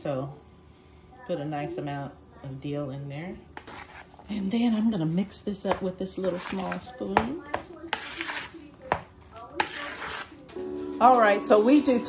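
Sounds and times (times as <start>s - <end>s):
spoon scraping plastic bowl: 3.5s - 4.5s, 5.6s - 10.5s
music: 10.5s - 12.0s.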